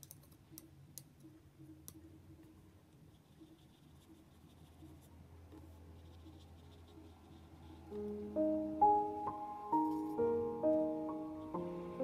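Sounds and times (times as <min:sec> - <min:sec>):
paintbrush strokes on paper: 0:02.8 - 0:08.4, 0:09.7 - 0:12.0.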